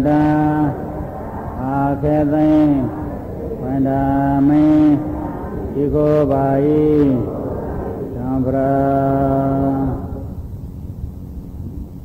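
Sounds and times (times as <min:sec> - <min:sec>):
man chanting: 0:00.0 - 0:10.4.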